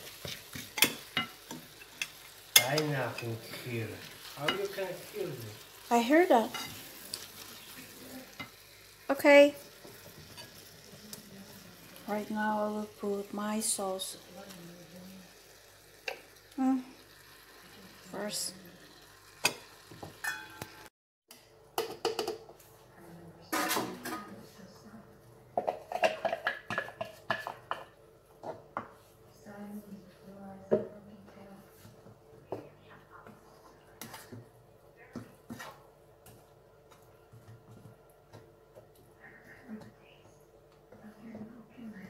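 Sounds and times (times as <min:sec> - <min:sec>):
utensils clattering against pan: 0:00.0 - 0:05.1, 0:05.9 - 0:07.4, 0:19.4 - 0:20.8, 0:25.6 - 0:28.0
wooden spatula scraping a frying pan: 0:00.0 - 0:05.1, 0:35.5 - 0:35.8.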